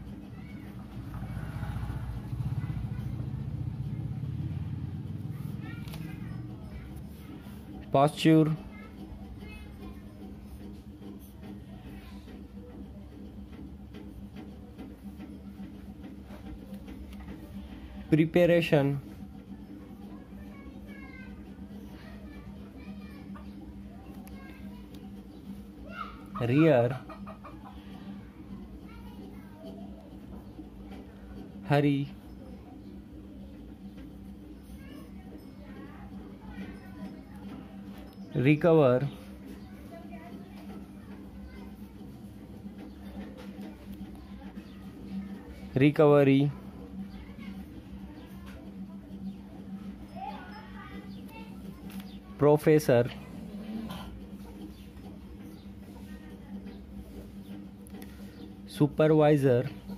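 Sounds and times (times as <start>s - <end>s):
engine running: 0.0s - 26.0s
steady low hum: 0.0s - 59.9s
chicken clucking: 26.4s - 28.2s.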